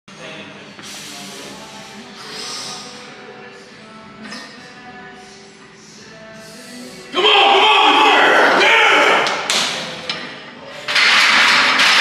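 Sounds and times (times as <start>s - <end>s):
men shouting loudly: 7.1s - 9.4s.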